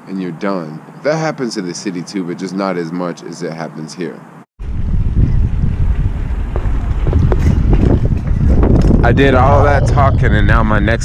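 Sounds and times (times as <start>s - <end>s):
wind buffeting microphone: 4.6s - 11.0s.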